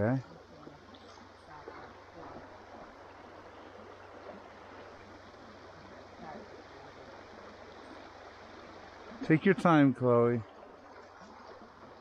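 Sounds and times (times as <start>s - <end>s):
creek flowing over stones: 0.0s - 12.0s.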